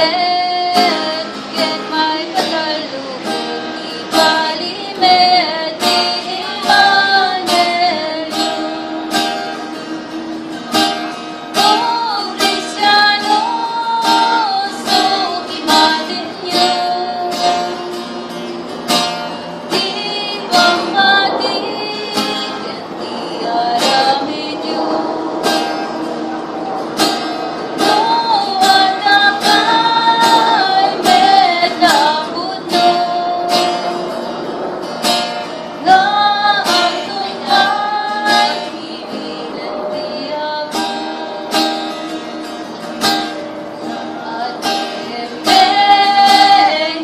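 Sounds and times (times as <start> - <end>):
woman singing a hymn: 0.0 - 10.6, 11.4 - 26.8, 27.4 - 47.0
strummed acoustic guitar: 0.0 - 47.0.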